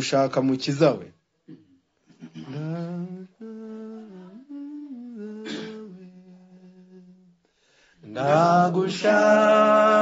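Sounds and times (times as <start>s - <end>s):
person humming a slow tune: 2.4s - 7.4s.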